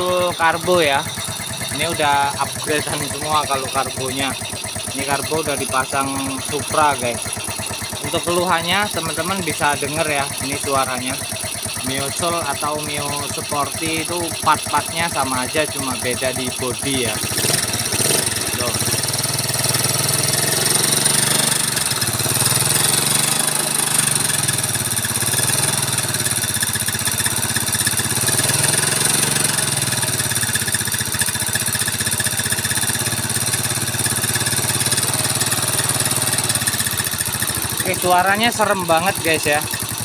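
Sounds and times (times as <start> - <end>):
rough mechanical clatter: 0.0 - 40.0
scooter engine idling: 0.0 - 40.0.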